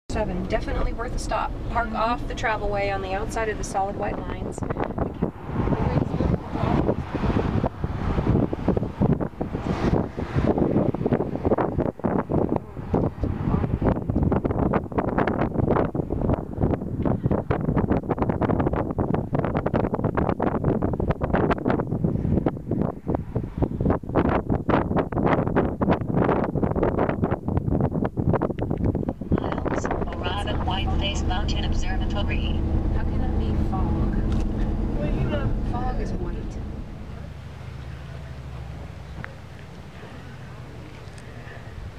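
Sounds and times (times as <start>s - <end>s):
wind blowing across microphone: 0.1s - 41.9s.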